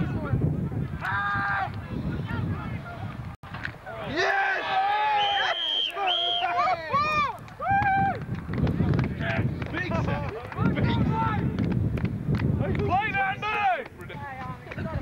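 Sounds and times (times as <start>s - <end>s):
men shouting: 4.0s - 7.0s.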